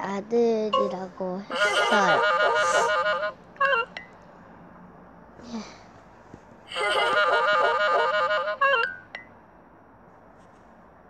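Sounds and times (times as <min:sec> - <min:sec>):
girl laughing: 0:01.5 - 0:03.8, 0:06.7 - 0:08.9.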